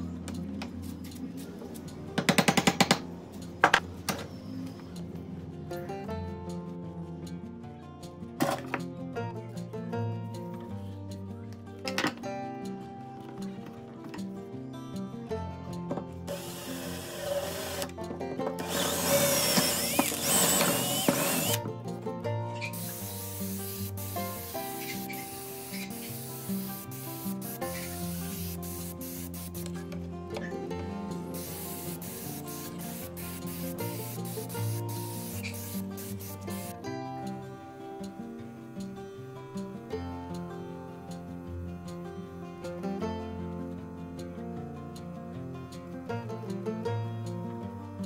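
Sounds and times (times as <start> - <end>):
acoustic guitar music: 5.0 - 19.4, 21.6 - 48.0
spray gun hissing: 22.6 - 29.8, 31.4 - 36.8.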